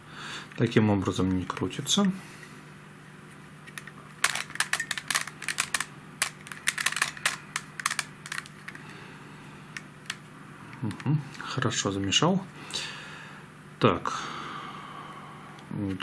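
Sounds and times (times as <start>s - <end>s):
puzzle cube pieces clicking: 3.7s - 8.8s.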